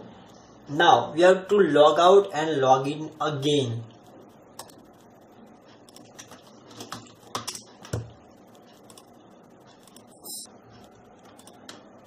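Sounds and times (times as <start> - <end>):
computer keyboard keystrokes: 5.9 - 8.1.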